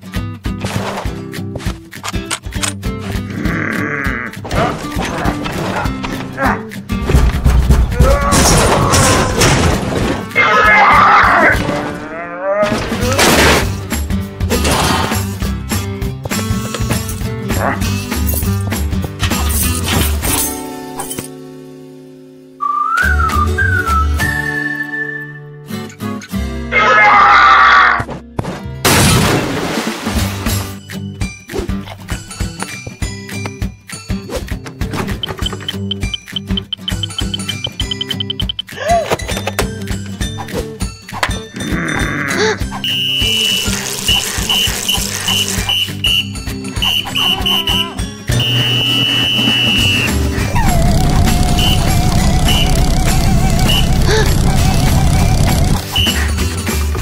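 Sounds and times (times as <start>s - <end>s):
whistled jingle over bass beat: 22.6s - 25.5s, 35.1s - 38.7s, 42.8s - 43.6s, 44.5s - 56.5s
cartoon music cue: 35.0s - 38.8s, 41.5s - 56.5s
coach's whistle blasts: 42.8s - 43.6s, 45.3s - 50.2s, 55.9s - 56.3s.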